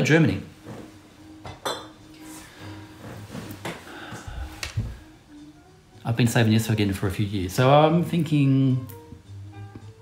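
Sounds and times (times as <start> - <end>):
glass bottles clinking: 1.5 - 2.0.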